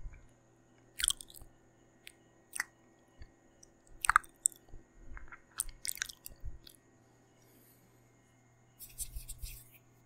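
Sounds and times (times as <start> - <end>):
wet mouth clicks and smacks: 1.0 - 2.7, 4.0 - 4.6.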